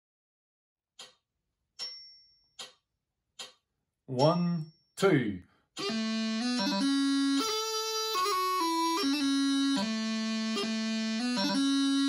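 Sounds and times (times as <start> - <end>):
metronome clicking: 1.0 - 1.2, 2.6 - 4.4, 5.8 - 6.0.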